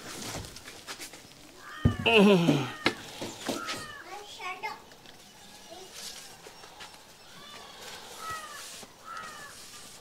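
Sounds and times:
outdoor ambience: 0.0s - 10.0s
bird calling: 1.6s - 10.0s.

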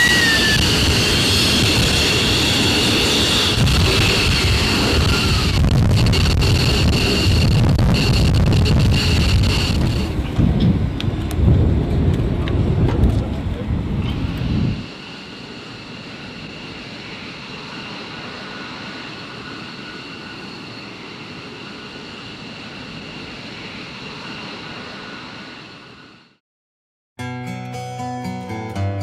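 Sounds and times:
jet engines running: 0.0s - 26.4s
turbine whine: 0.0s - 26.4s.

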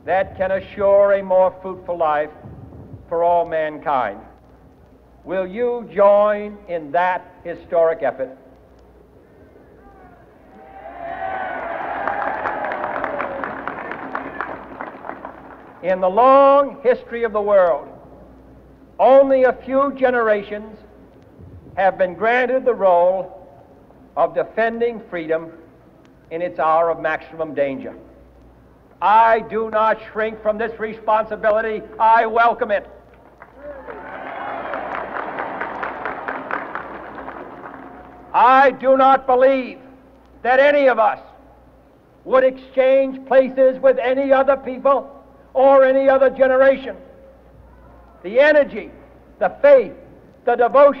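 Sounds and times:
faint steady hum: 0.0s - 51.0s
crowd cheering: 9.8s - 15.8s, 33.3s - 38.4s
crowd applause: 10.6s - 15.8s, 33.4s - 38.4s.

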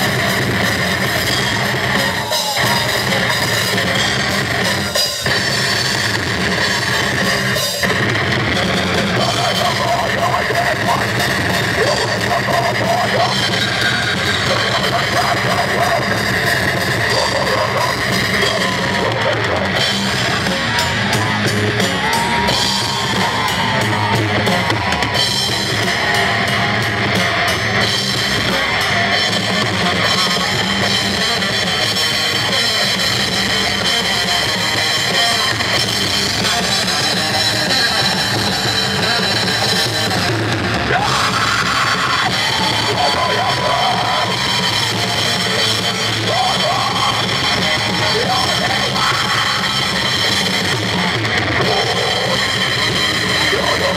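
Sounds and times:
live metal band playing: 0.0s - 53.9s.

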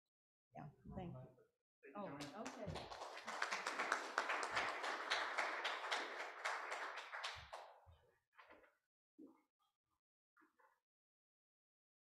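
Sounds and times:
audience applauding: 2.1s - 7.8s.

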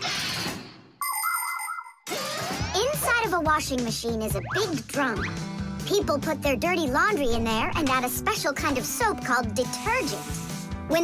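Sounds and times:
bright electronic jingle: 1.0s - 2.1s.

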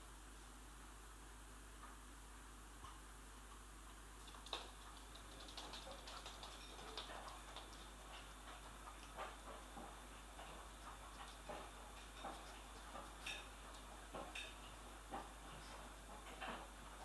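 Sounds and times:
puppy claws clicking on floor: 4.2s - 16.6s.

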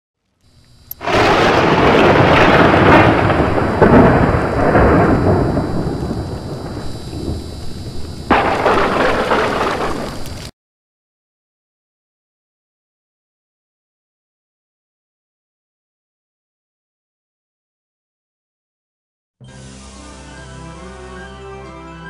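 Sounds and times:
loud thunder-like blast: 1.0s - 10.2s.

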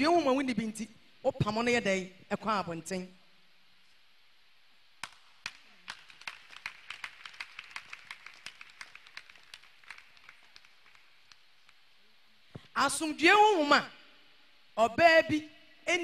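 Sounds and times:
faint hand clapping: 5.0s - 11.8s.

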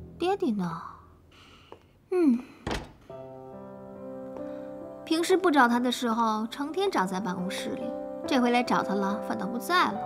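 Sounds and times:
dull thunk: 2.7s - 3.0s
soft background music chords: 3.0s - 10.0s.

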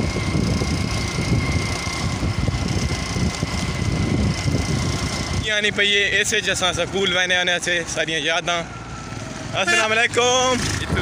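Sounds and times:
wind on microphone: 0.0s - 5.4s
motorcycle engine rumble: 0.0s - 11.0s
man speaking: 9.5s - 11.0s.

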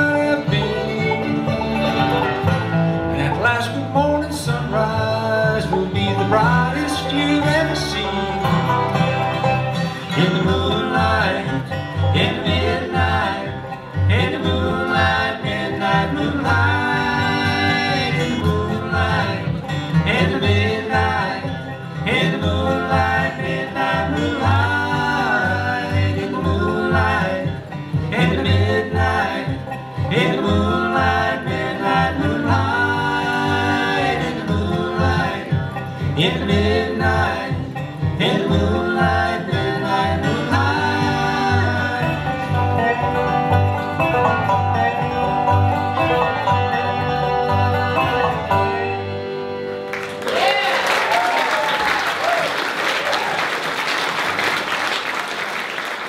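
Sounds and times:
bluegrass band playing: 0.0s - 56.0s
audience applauding: 49.8s - 56.0s.

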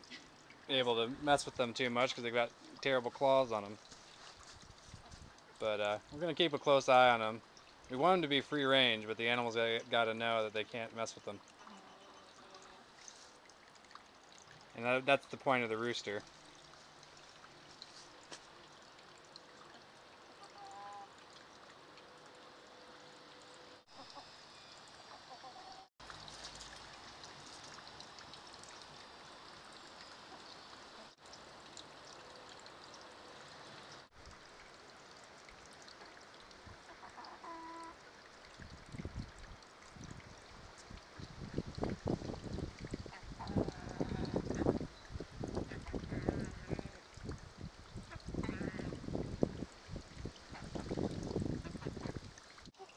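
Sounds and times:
faint chicken calls: 25.1s - 25.9s.

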